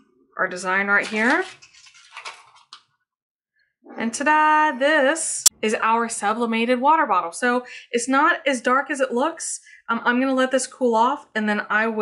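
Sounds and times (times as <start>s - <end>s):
paper rustling and crinkling: 1.0s - 2.8s.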